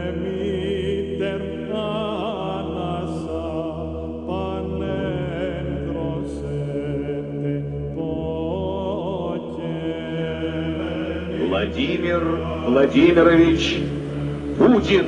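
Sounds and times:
steady low drone: 0:00.0 - 0:15.0
voices chanting held notes: 0:09.6 - 0:15.0.

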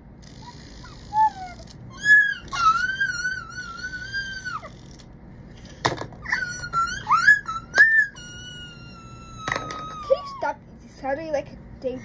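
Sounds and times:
dog whining: 0:00.2 - 0:05.0, 0:06.2 - 0:10.6.

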